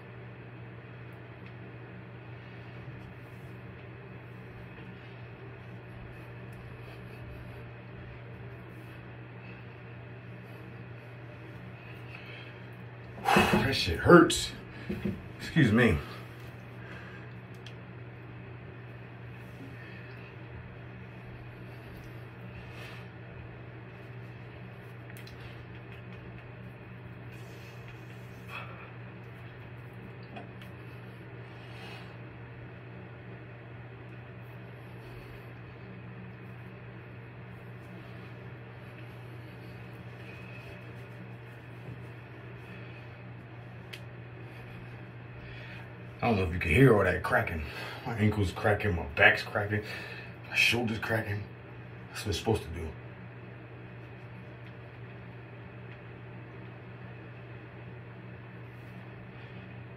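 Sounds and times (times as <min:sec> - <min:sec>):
low hum: 0:00.0 - 0:59.9.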